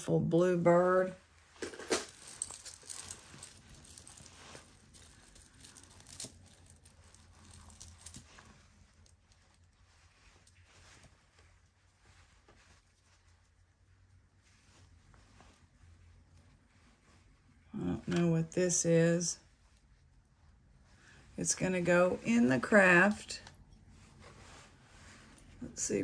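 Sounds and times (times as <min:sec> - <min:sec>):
rustling: 0:01.4 - 0:26.0
metal chains clinking: 0:01.8 - 0:09.7.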